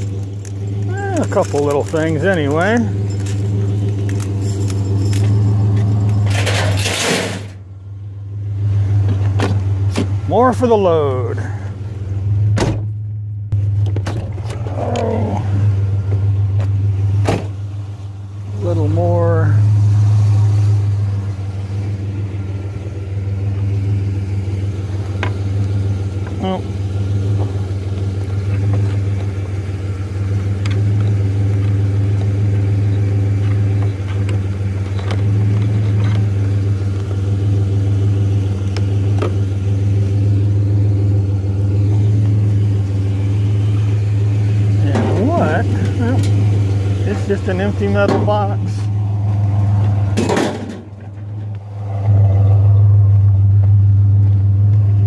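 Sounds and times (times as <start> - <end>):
truck engine idling: 0.0 - 55.0.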